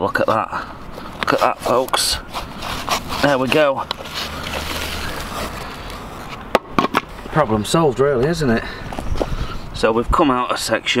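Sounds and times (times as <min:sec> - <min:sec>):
wooden board scraping concrete: 0:01.1 - 0:07.3.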